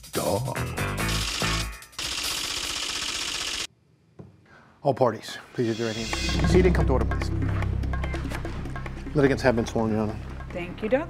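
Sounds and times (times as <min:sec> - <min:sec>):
typing sound effect clatter: 0:01.1 - 0:03.7.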